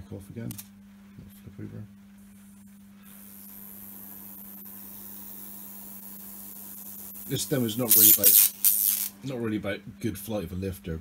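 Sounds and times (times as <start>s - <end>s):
high-voltage corona hiss: 2.7s - 9.2s.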